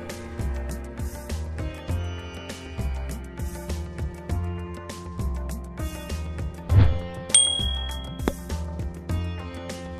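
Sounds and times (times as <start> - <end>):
background music: 0.0 - 9.9
bright bell ding: 7.4 - 8.4.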